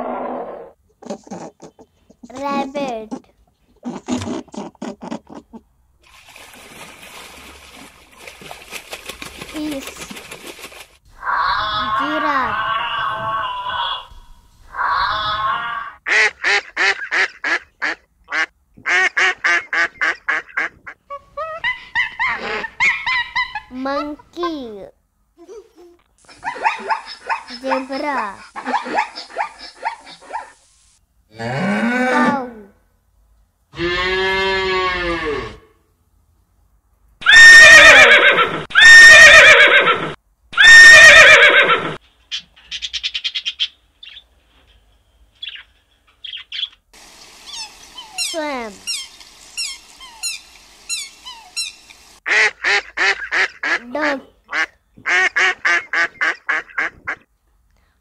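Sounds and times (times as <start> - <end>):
harsh animal calls: 11.1 - 16.1
loud screeches: 11.3 - 16.0
bird chirps: 42.3 - 44.3.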